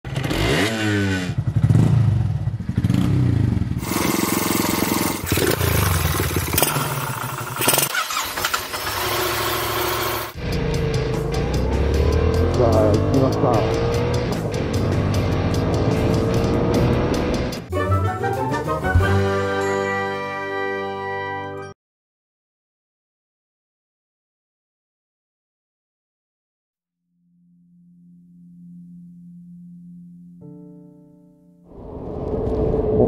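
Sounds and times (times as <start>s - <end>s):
motorcycle engine revving: 0.1s - 17.7s.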